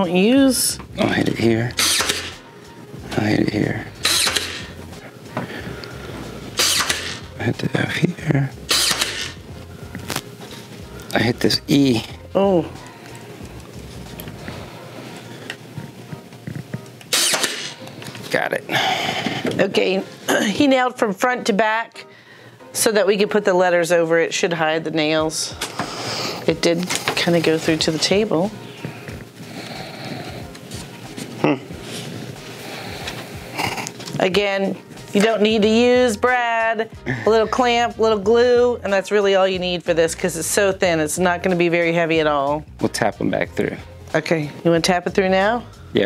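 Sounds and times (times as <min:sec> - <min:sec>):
nail gun click: 0:01.8 - 0:02.3, 0:04.0 - 0:04.6, 0:06.6 - 0:07.2, 0:08.7 - 0:09.3, 0:17.1 - 0:17.8.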